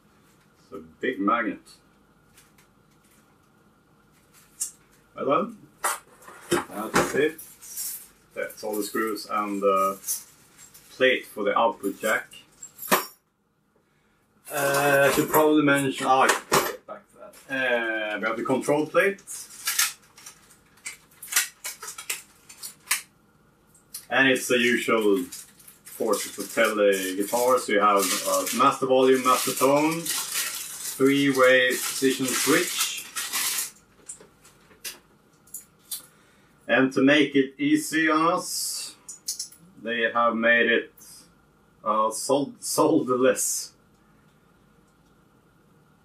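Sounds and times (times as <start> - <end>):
packaging rustling: 19.3 - 23.1, 24.8 - 34.9.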